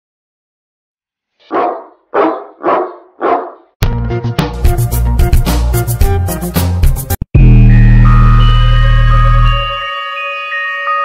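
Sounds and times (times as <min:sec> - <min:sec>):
dog barking: 0:01.5 - 0:03.7
music: 0:03.8 - 0:11.0.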